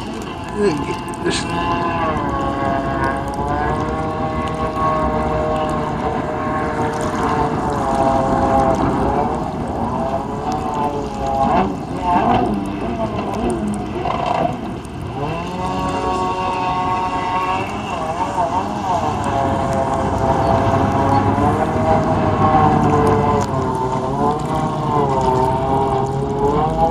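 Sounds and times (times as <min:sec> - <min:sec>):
jet ski engine running: 0:00.0 - 0:26.9.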